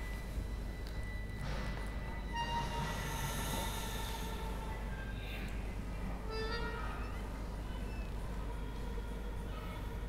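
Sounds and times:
low steady room rumble: 0.0s - 10.0s.

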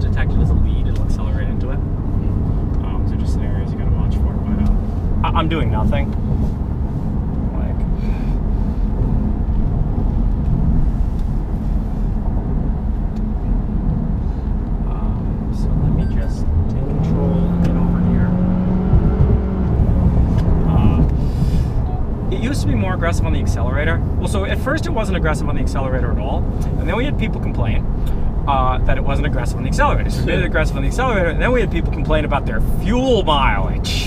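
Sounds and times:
car engine: 0.0s - 34.0s
road and tyre rumble: 0.0s - 34.0s.

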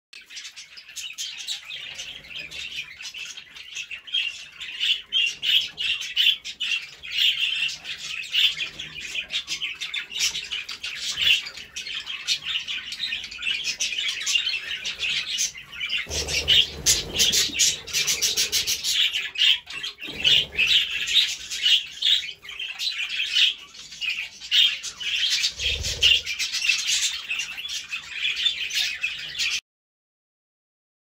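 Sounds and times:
birds chirping and chattering: 0.2s - 29.6s.

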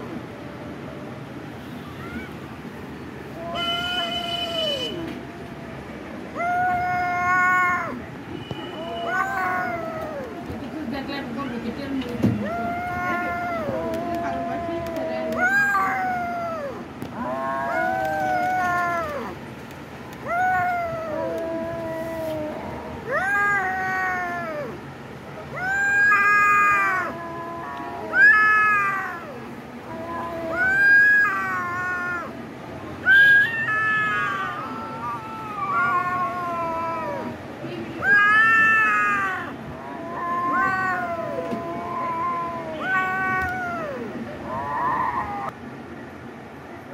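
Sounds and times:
kitten meowing: 25.6s - 32.3s, 33.1s - 37.3s, 38.0s - 44.1s.

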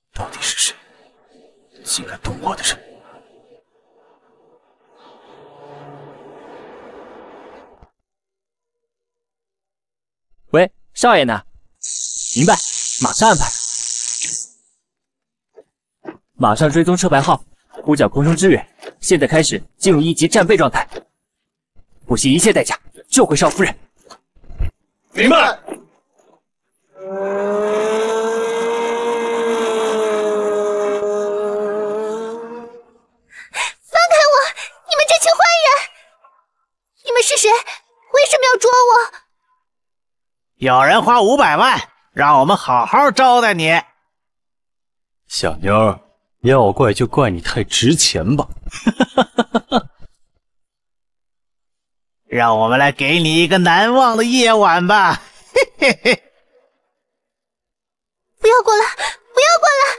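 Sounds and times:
motorcycle engine at high revs: 27.0s - 30.4s.

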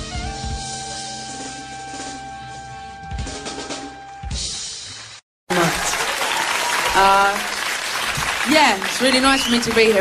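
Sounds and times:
recorded music: 0.0s - 5.0s
audience applauding and cheering: 5.0s - 10.0s.

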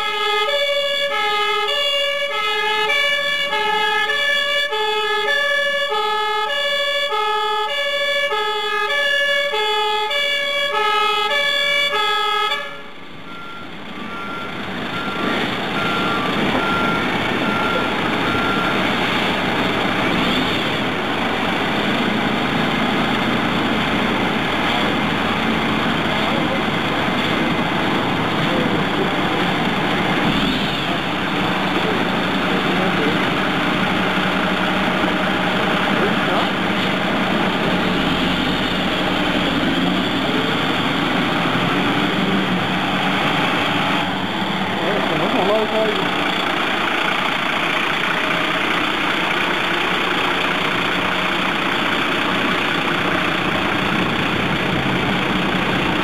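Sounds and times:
diesel engines running: 0.0s - 56.0s.

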